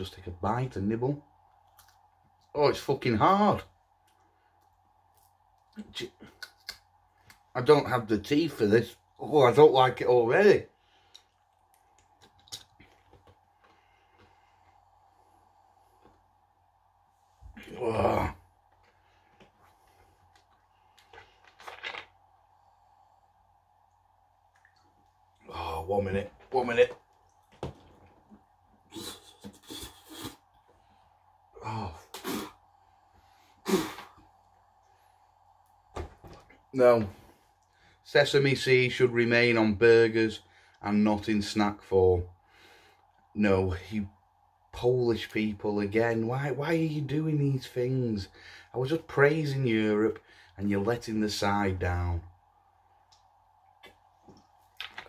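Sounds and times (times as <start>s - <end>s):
brittle crunching when chewed: 1.6s - 2.0s
man grunting: 17.6s - 18.4s.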